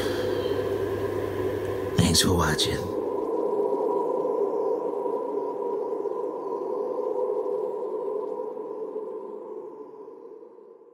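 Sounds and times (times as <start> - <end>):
ambient drone music: 0.0 - 10.9.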